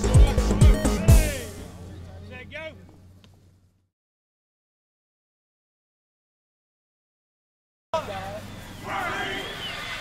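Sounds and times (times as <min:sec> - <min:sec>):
people's short calls outdoors: 0:00.3 - 0:03.6, 0:08.0 - 0:10.0.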